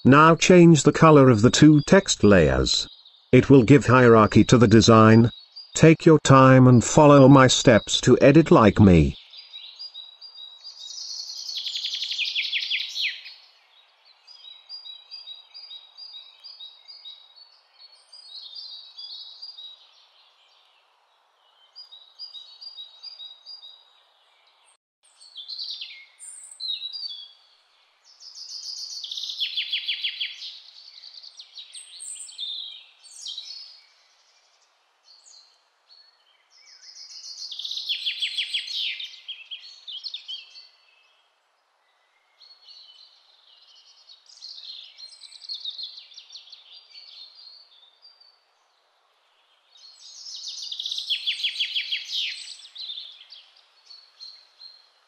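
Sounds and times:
bird song with rapid trill: 0:02.8 - 0:03.3, 0:05.0 - 0:05.8, 0:09.1 - 0:55.0
quiet bird chirps: 0:09.0 - 0:55.0.

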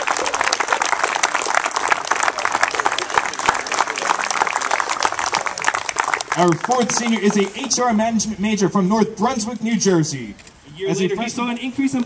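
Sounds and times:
crowd applauding: 0:00.0 - 0:08.1.

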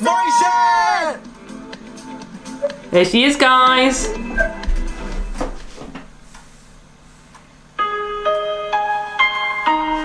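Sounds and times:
quiet music: 0:00.0 - 0:05.9, 0:07.8 - 0:10.0.

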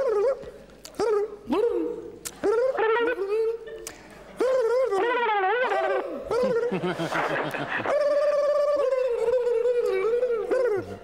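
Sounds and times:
man making squeaky alien vocalizations: 0:00.0 - 0:03.7, 0:04.4 - 0:06.7, 0:07.9 - 0:11.0.

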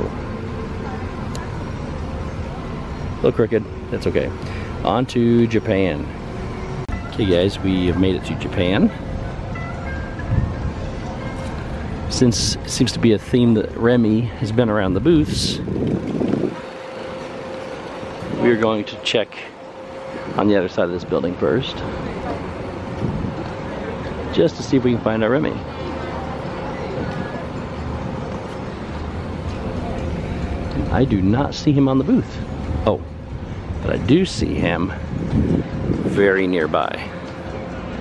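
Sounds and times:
low outdoor rumble: 0:00.0 - 0:38.0.

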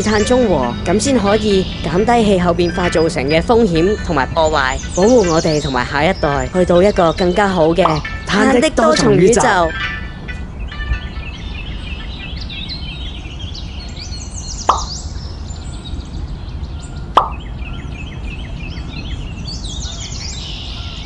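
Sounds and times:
birds chirping: 0:00.0 - 0:21.0
plops with falling pitch: 0:07.8 - 0:09.8, 0:17.2 - 0:17.4.

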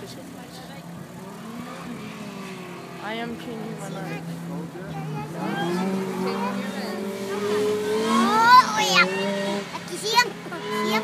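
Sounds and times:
car engine passing: 0:00.0 - 0:11.0.

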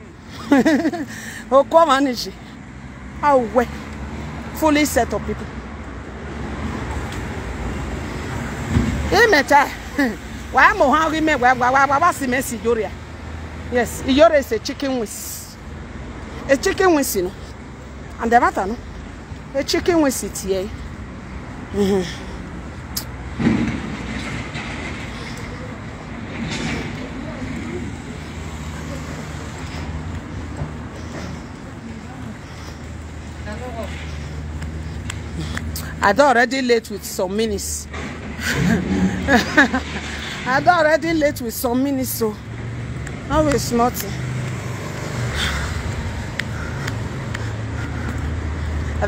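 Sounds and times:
rumble of passing vehicles: 0:00.0 - 0:49.0
thump: 0:23.4 - 0:24.8.

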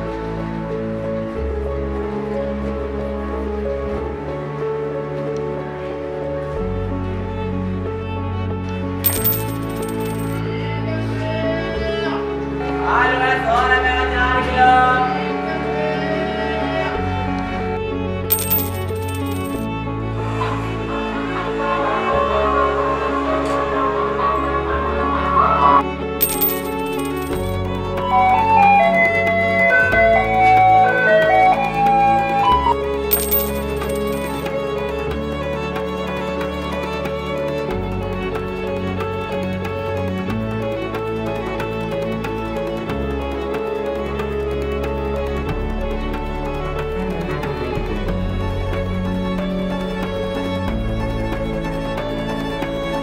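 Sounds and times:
background music: 0:00.0 - 0:53.0
coin clinking and spinning: 0:09.0 - 0:10.4, 0:18.3 - 0:19.6, 0:26.2 - 0:27.6, 0:33.1 - 0:34.5.

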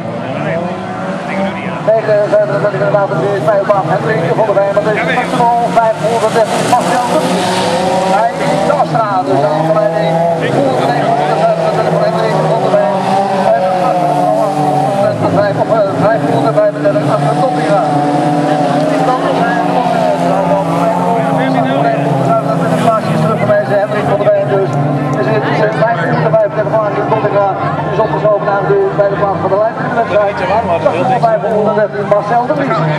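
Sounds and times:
car engines racing at high revs: 0:00.0 - 0:32.9
indistinct talking: 0:00.0 - 0:32.9.

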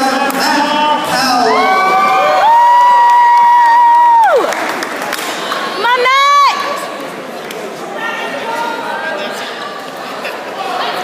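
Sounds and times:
spectators yelling and cheering: 0:01.1 - 0:06.9.

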